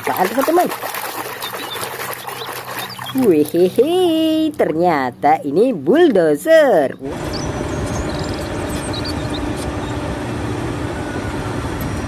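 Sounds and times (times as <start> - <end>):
water sloshing in a tub: 0.0 - 5.2.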